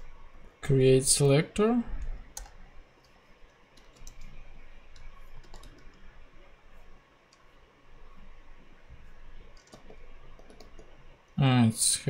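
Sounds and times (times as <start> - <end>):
computer keyboard keys clicking: 2.3 - 3.1, 3.8 - 6.0, 9.6 - 11.0.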